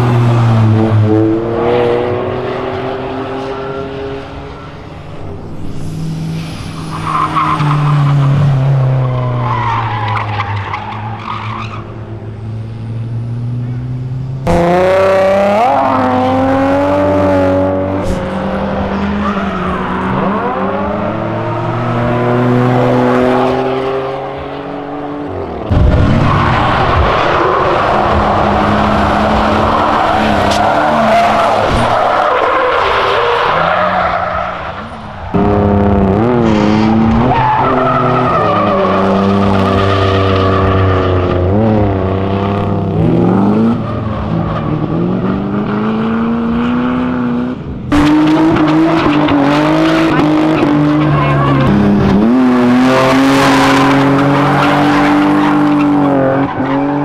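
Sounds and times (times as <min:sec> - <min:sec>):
car engines revving: 0:00.0 - 0:57.0
tyres squealing and skidding: 0:05.6 - 0:12.1, 0:18.0 - 0:22.6, 0:25.4 - 0:45.9, 0:47.9 - 0:57.0.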